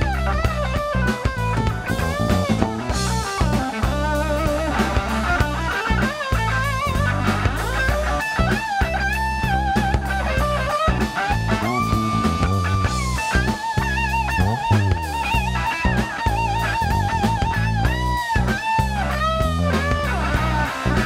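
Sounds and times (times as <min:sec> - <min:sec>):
drum kit groove: 0:00.0 - 0:21.0
electric bass: 0:00.0 - 0:21.0
electric guitar lead lines: 0:00.0 - 0:21.0.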